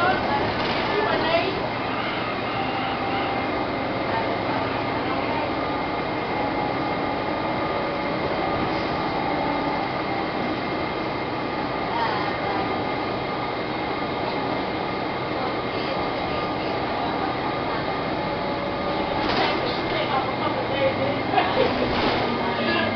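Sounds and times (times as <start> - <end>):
bus engine and road rumble: 0.0 - 22.9.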